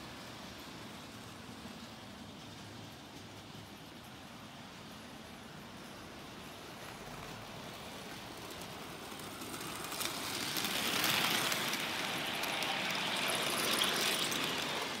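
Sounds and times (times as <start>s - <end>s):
model train whirring on track: 0.0s - 15.0s.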